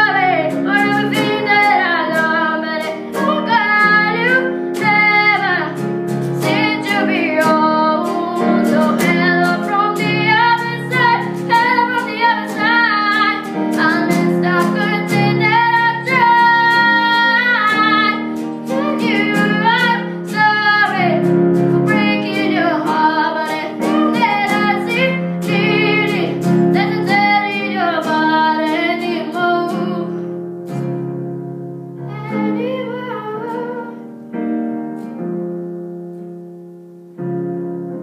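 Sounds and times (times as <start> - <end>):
boy singing ballad: 0.0 - 30.3, 32.0 - 34.1
piano chords: 0.0 - 38.0.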